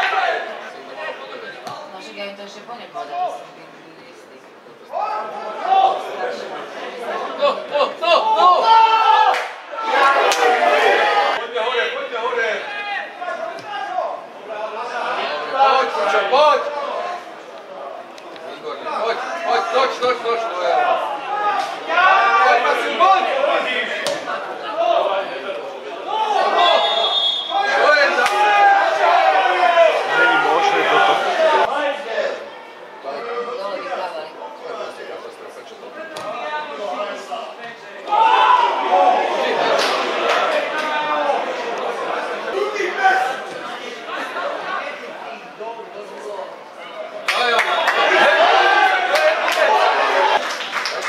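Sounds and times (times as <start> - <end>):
men shouting: 27.5 - 31.9, 38.1 - 41.6.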